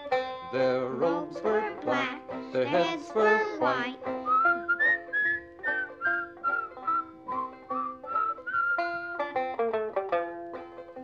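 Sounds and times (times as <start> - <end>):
plucked banjo: 0.0 - 11.0
whistled melody: 4.2 - 9.4.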